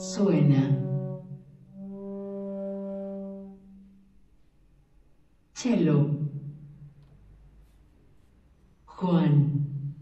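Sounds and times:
trombone low note: 0:00.0 - 0:04.2.

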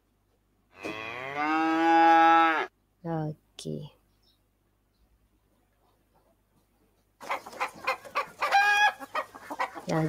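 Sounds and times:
cow mooing: 0:00.8 - 0:02.7.

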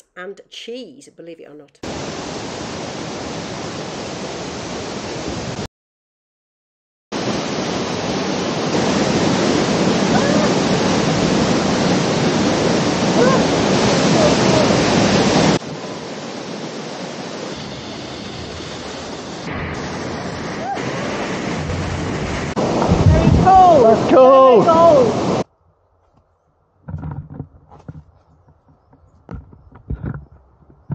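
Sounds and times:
waterfall rushing: 0:01.8 - 0:05.7, 0:07.2 - 0:25.4.

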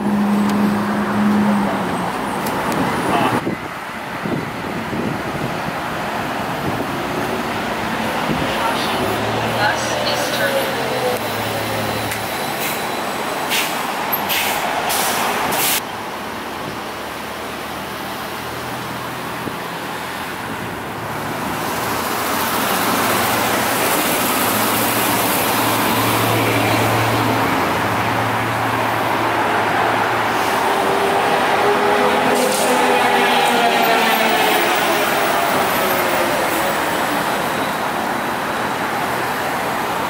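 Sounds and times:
street traffic: 0:00.0 - 0:40.0
trolleybus passing: 0:00.0 - 0:40.0
short sharp hisses: 0:13.5 - 0:15.8.

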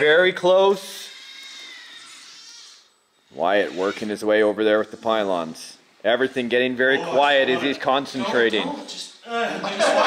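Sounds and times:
small electric motor whining: 0:00.9 - 0:05.2.

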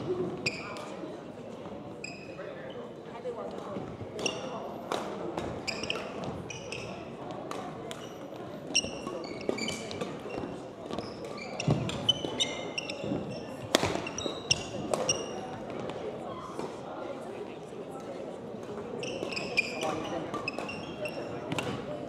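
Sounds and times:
shoes squeaking on court floor: 0:00.2 - 0:01.0, 0:01.9 - 0:03.0, 0:03.8 - 0:04.7, 0:05.4 - 0:16.4, 0:18.8 - 0:22.0
rackets striking shuttlecock: 0:11.2 - 0:16.0.

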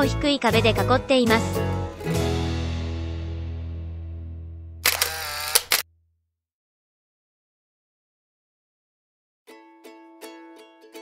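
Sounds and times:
background music: 0:00.0 - 0:04.8
camera shutter clicks: 0:04.8 - 0:05.8
camera whirring wind-on: 0:04.8 - 0:05.8.

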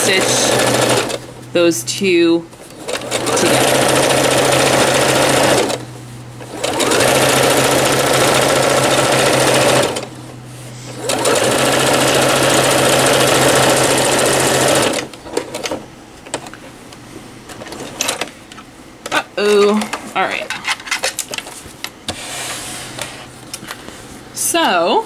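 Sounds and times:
electric sewing machine stitching: 0:00.0 - 0:01.3, 0:02.6 - 0:05.8, 0:06.4 - 0:10.1, 0:10.8 - 0:15.8.

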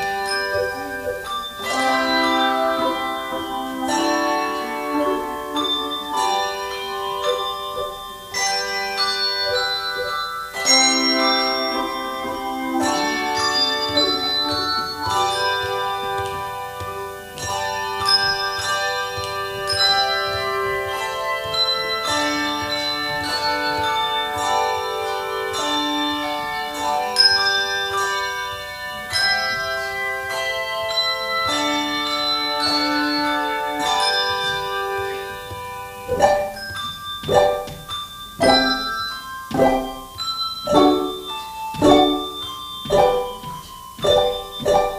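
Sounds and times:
handbell choir playing chords: 0:00.0 - 0:44.9.

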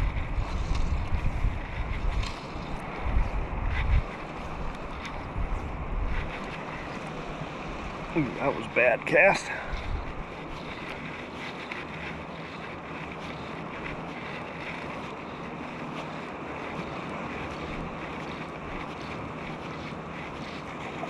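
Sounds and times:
wind on microphone: 0:00.0 - 0:21.0.

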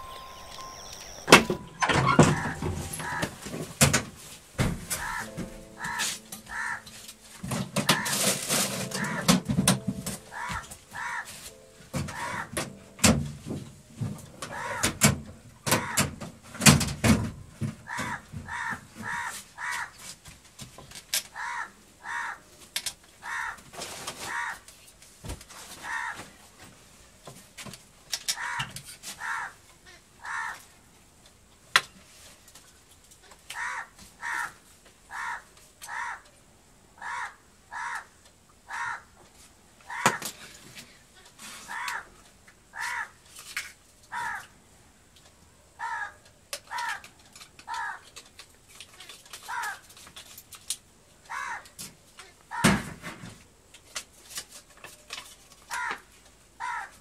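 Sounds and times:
crows cawing: 0:02.0 - 0:03.5, 0:04.9 - 0:07.0, 0:07.8 - 0:09.4, 0:10.3 - 0:11.5, 0:12.1 - 0:12.6, 0:14.4 - 0:15.0, 0:15.7 - 0:16.1, 0:17.8 - 0:20.0, 0:21.3 - 0:22.4, 0:23.2 - 0:24.7, 0:25.8 - 0:26.3, 0:28.3 - 0:29.6, 0:30.2 - 0:30.7, 0:33.5 - 0:36.3, 0:37.0 - 0:39.2, 0:39.9 - 0:40.4, 0:41.6 - 0:43.2, 0:44.1 - 0:44.6, 0:45.8 - 0:48.1, 0:49.4 - 0:49.9, 0:51.3 - 0:51.8, 0:52.5 - 0:52.8, 0:55.7 - 0:57.0
knocks and clatter of objects: 0:07.4 - 0:10.8, 0:11.9 - 0:19.2.

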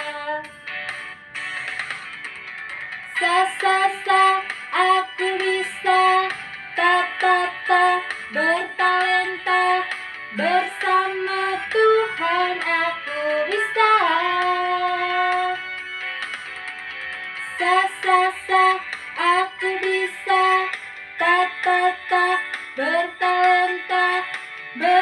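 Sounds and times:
woman singing: 0:00.0 - 0:00.5, 0:03.1 - 0:15.6, 0:17.4 - 0:25.0
backing music: 0:00.0 - 0:25.0.

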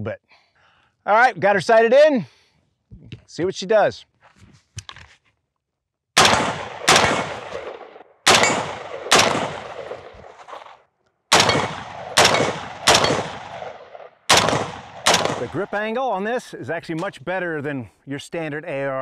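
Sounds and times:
rifle shots with echo: 0:06.2 - 0:10.4, 0:11.3 - 0:15.7.

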